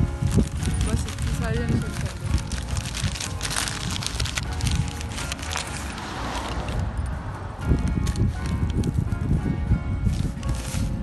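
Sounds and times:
paper wrapping crinkling: 0.0s - 6.8s, 10.1s - 11.0s.

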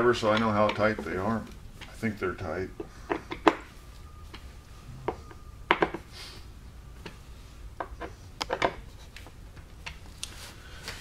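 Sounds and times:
hand tools clicking on metal: 0.2s - 2.0s.

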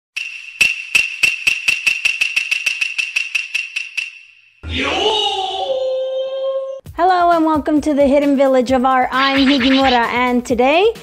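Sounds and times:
steady high ringing tone: 0.2s - 4.6s.

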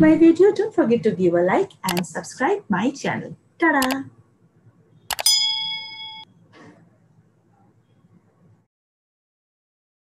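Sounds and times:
quick clicks: 1.9s - 2.1s, 3.8s - 4.0s, 5.1s - 5.4s
bright bell ding: 5.1s - 6.3s.

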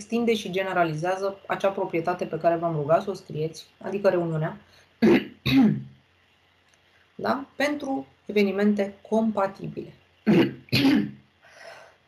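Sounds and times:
woman coughing: 5.0s - 5.9s, 10.3s - 11.2s.

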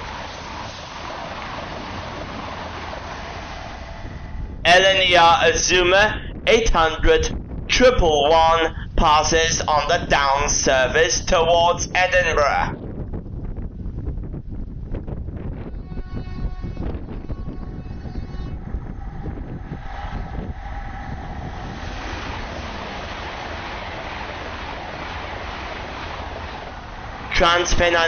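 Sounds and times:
train passing at speed: 0.0s - 7.0s, 15.3s - 28.0s
train horn: 15.6s - 20.5s.

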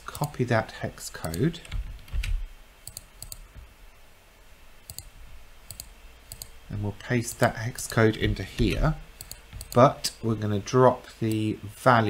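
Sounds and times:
computer mouse and keyboard clicks: 1.2s - 3.6s, 4.9s - 5.1s, 5.7s - 6.6s, 7.4s - 10.2s.

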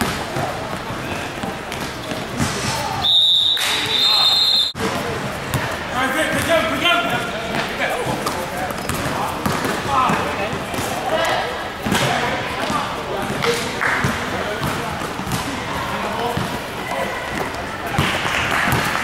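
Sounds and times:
players and spectators voices: 0.0s - 19.0s
referee whistle blast: 3.0s - 4.8s
basketball bouncing on court: 7.5s - 11.0s, 11.8s - 19.0s.

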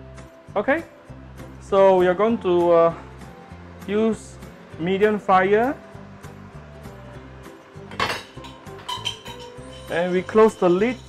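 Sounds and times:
background music: 0.0s - 11.0s
metallic cookware clinks: 7.9s - 11.0s.

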